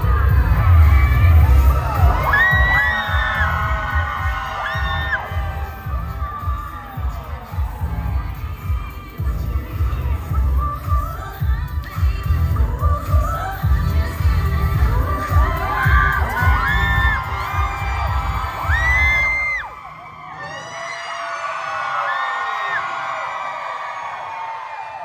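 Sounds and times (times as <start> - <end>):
dance track with heavy bass beat: 0.0 - 19.7
crowd screaming and cheering: 0.0 - 25.0.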